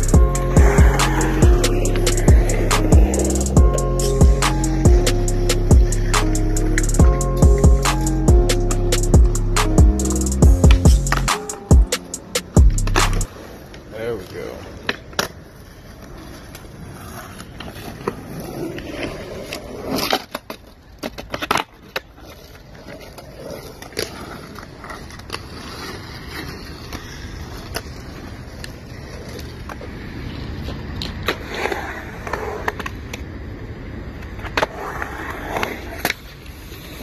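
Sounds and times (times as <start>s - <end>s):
music with heavy beat: 0.0s - 13.3s
skateboard wheels rolling on concrete: 0.0s - 37.0s
skateboard clacks popping and landing: 10.6s - 13.8s, 14.7s - 15.6s, 17.4s - 25.8s.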